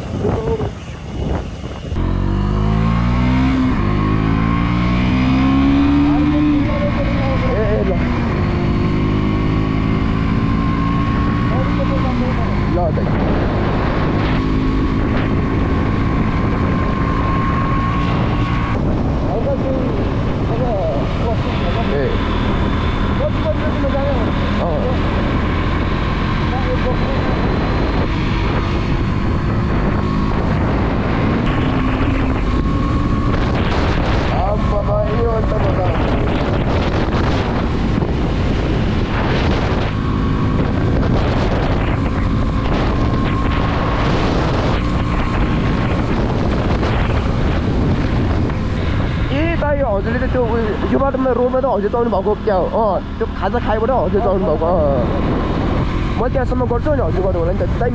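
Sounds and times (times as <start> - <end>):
voices: 0.0 - 1.2, 5.9 - 8.2, 49.3 - 55.3, 56.1 - 57.9
vehicle engine accelerating: 0.0 - 57.9.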